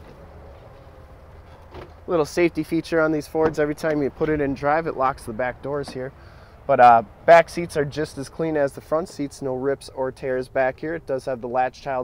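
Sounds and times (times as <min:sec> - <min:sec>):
outdoor low rumble: 0:00.0 - 0:10.2.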